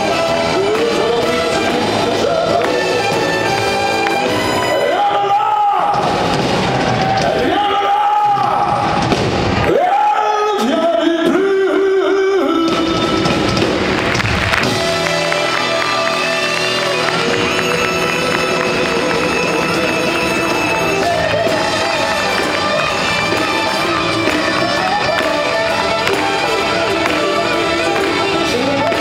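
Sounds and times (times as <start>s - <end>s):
live band music: 0.0s - 29.0s.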